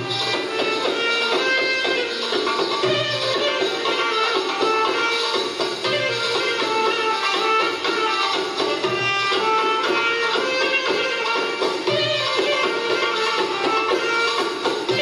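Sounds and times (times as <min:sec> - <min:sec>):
belly dance music over speakers: 0:00.0 - 0:15.0.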